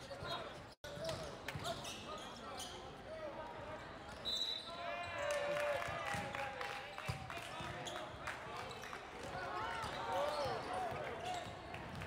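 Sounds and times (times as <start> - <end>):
referee's whistle: 4.2 - 4.8.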